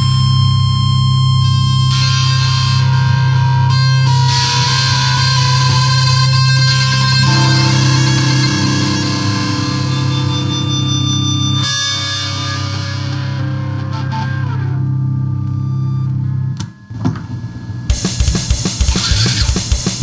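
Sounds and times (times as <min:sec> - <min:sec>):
distorted electric guitar chord: 0:00.0 - 0:16.5, 0:17.9 - 0:20.0.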